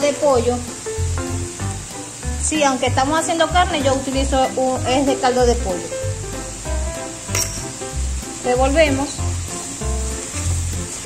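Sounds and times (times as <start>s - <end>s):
food sizzling in a pot: 0.0s - 11.0s.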